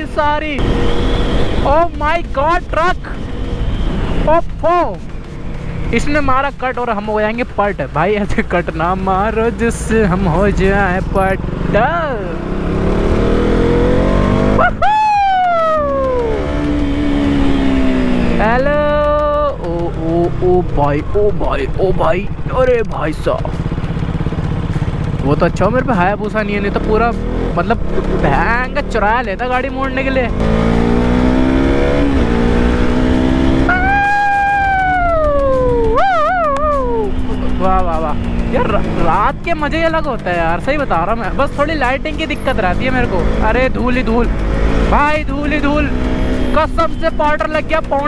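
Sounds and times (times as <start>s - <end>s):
motorcycle engine accelerating: 0.0s - 48.0s.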